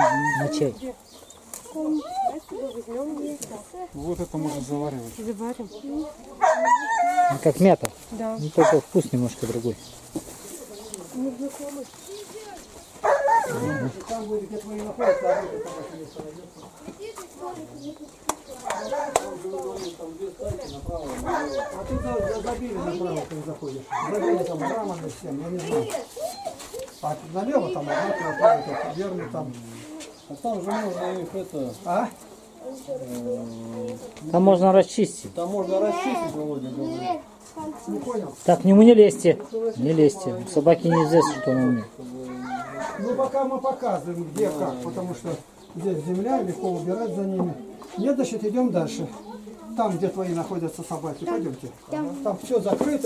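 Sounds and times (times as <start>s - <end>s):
dog barking: 0.0s - 0.6s, 6.4s - 7.4s, 8.6s - 8.9s, 13.0s - 13.9s, 15.0s - 16.0s, 18.6s - 19.4s, 21.2s - 21.9s, 23.9s - 25.0s, 27.8s - 29.5s, 30.7s - 31.2s, 40.9s - 41.4s, 42.4s - 43.3s
voices talking: 0.0s - 53.0s.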